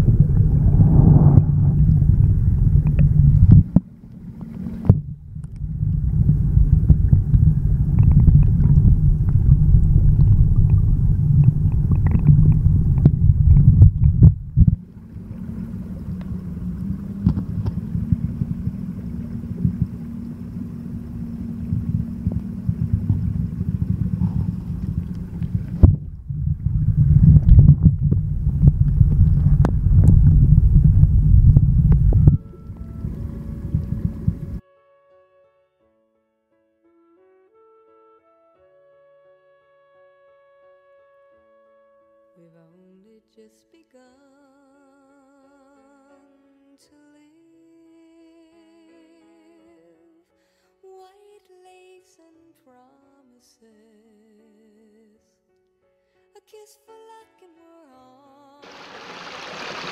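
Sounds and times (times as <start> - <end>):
muffled underwater water rumble: 0.0 - 34.6, 58.6 - 59.9.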